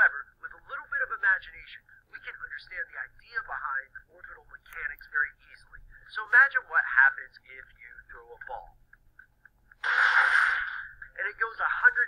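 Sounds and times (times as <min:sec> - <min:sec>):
man speaking: 0:00.0 - 0:08.8, 0:11.1 - 0:12.0
burst of noise: 0:09.8 - 0:11.0.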